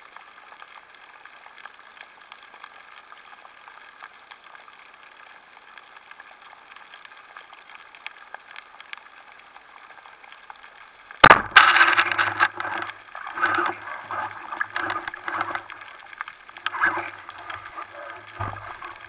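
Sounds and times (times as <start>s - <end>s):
faint water noise: 0.0s - 19.0s
speargun firing crack: 11.2s - 12.0s
clattering underwater: 11.2s - 19.0s.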